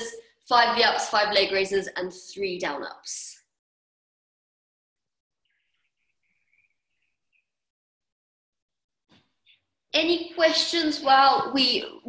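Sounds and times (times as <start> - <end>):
faint high bird chirping: 5.4 - 7.6.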